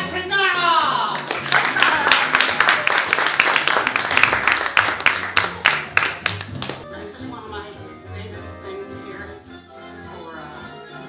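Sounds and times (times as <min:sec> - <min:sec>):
background music: 0:00.0 - 0:11.0
audience applause: 0:00.8 - 0:06.8.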